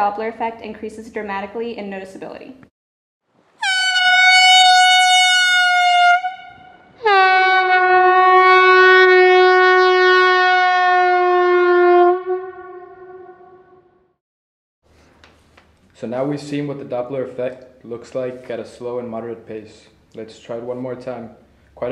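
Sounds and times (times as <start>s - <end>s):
air horn blasts passing by: 3.6s - 14.0s.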